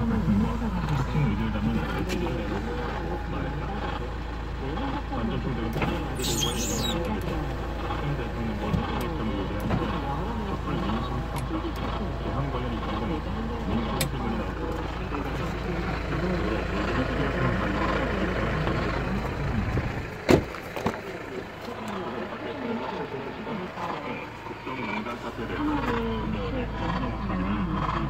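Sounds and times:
low hum inside car cabin: 0.0 - 28.0
car door shutting: 20.2 - 21.1
person's voice: 21.0 - 28.0.

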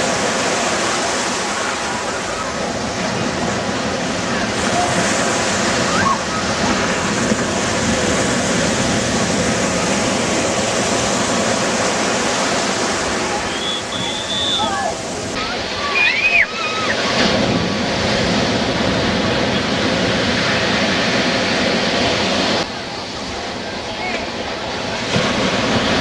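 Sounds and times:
surf breaking on shore: 0.0 - 26.0
voices calling out: 12.3 - 17.4.

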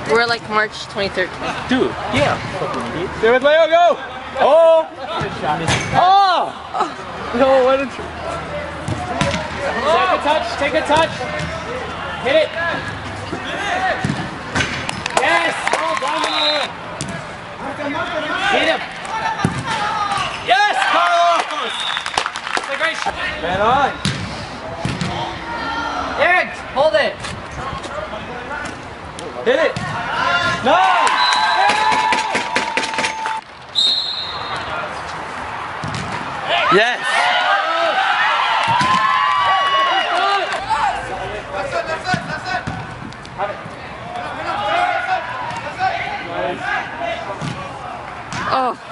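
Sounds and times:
players shouting: 1.8 - 22.2, 24.6 - 27.0, 29.5 - 48.9
soccer ball thudding from kicks: 35.8 - 36.2.

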